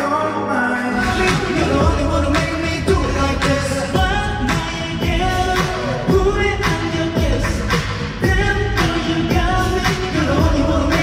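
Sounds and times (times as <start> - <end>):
man singing into a microphone: 0.0 - 11.0
pop backing track with drum beat: 0.9 - 11.0.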